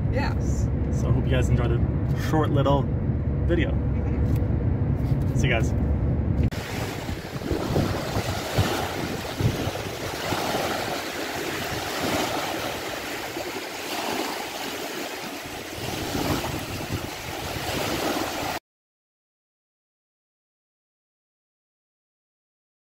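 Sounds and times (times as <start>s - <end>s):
wind buffeting microphone: 5.9s - 18.6s
waves washing against shore: 6.5s - 18.6s.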